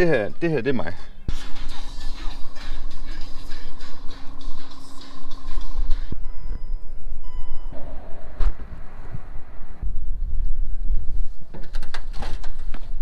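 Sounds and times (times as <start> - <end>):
short electronic beeps: 6.1 - 8.1.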